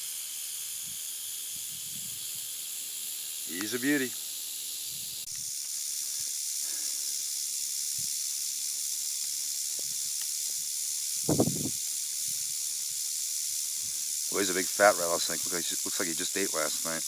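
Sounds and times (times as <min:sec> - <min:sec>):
rattlesnake rattling: 0:00.0 - 0:17.0.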